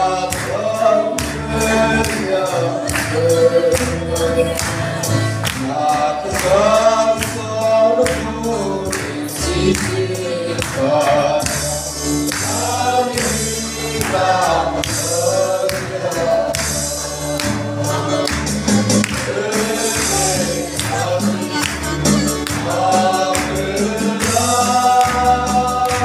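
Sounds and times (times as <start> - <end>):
choir singing a hymn: 0.0 - 26.0
held bass line: 0.0 - 26.0.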